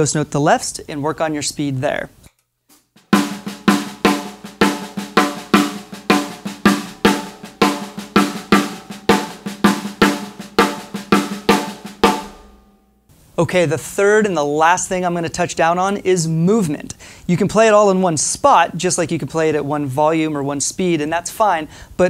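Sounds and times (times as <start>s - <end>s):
snare drum played with sticks: 3.0s - 12.6s.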